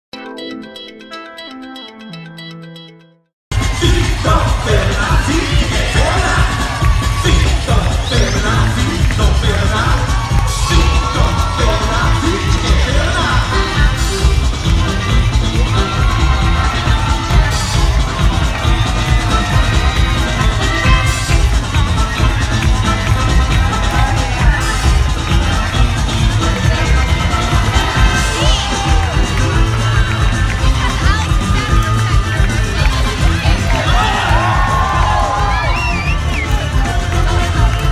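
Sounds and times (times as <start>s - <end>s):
crowd cheering and shouting: 3.5s - 37.9s
loud parade music with bass beat: 3.5s - 37.9s.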